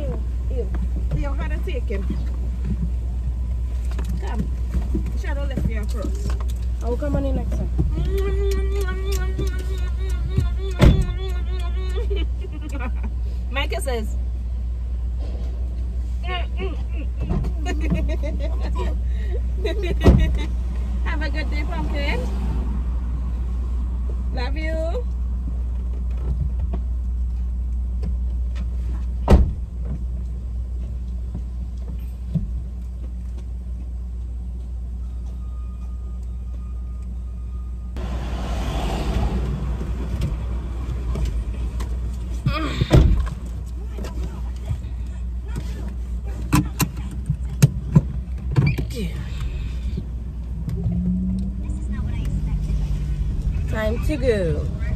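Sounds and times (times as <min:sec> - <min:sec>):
car engine idling: 0:00.0 - 0:37.2, 0:39.2 - 0:54.9
outside noise: 0:00.0 - 0:54.9
car doors shutting: 0:10.2 - 0:11.4, 0:19.8 - 0:20.5, 0:28.0 - 0:30.1, 0:38.0 - 0:44.4, 0:46.4 - 0:50.1.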